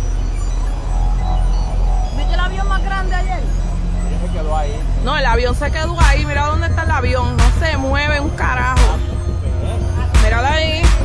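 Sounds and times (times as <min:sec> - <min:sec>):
people talking indistinctly: 0:00.0 - 0:11.0
steady low hum: 0:00.0 - 0:11.0.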